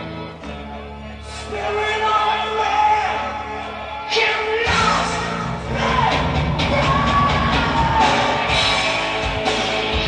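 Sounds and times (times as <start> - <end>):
crowd cheering and yelling: 0.5 - 10.0
heavy metal band playing live: 1.2 - 10.0.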